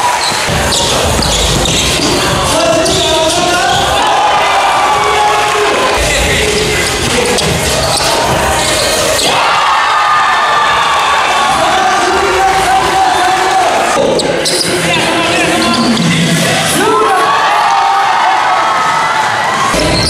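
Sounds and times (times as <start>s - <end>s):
crowd noise: 0.0s - 20.0s
loud music: 0.0s - 20.0s
basketball dribbling on hardwood: 0.3s - 3.9s.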